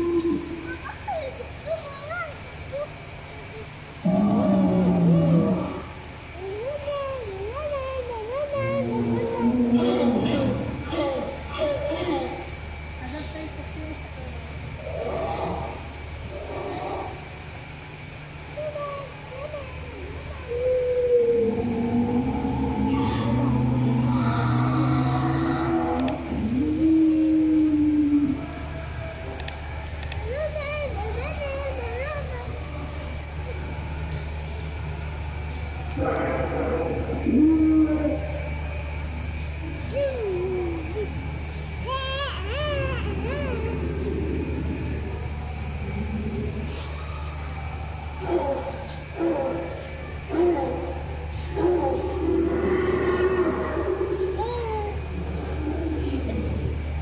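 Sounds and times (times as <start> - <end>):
dinosaur roar from loudspeaker: 4.0 - 5.9, 8.7 - 12.2, 20.8 - 28.4, 36.0 - 38.4, 43.7 - 47.0, 51.5 - 54.3.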